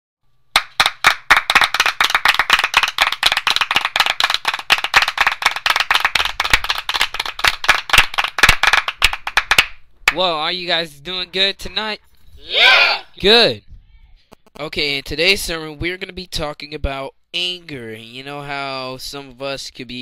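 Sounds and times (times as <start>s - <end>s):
group of people clapping: 0.5s - 10.2s.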